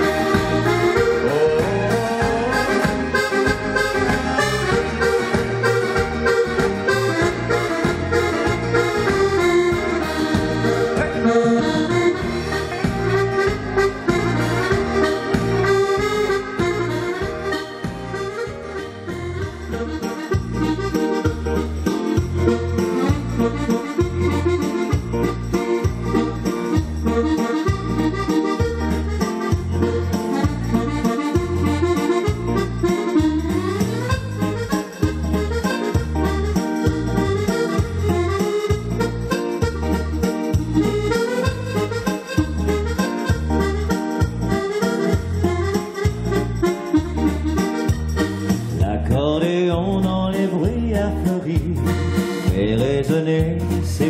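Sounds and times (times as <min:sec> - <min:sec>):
backing track with bass beat: 0:00.0 - 0:54.0
button accordion melody: 0:00.0 - 0:54.0.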